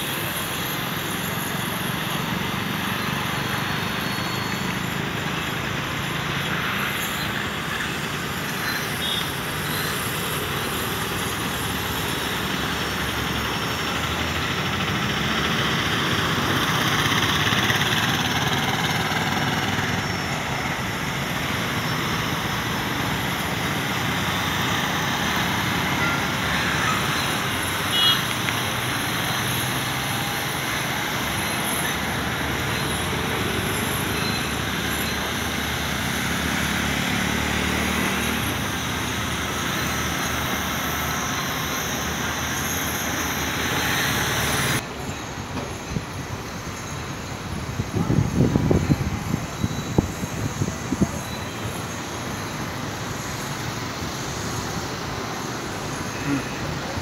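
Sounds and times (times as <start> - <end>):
road traffic passing: 0.0 - 57.0.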